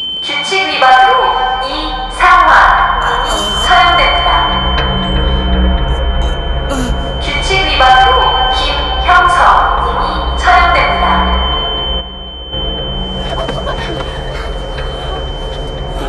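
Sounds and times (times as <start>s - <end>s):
high-pitched ringing tone: 0.0s - 16.0s
young man crying in pain: 3.0s - 4.0s, 5.0s - 7.2s, 13.2s - 16.0s.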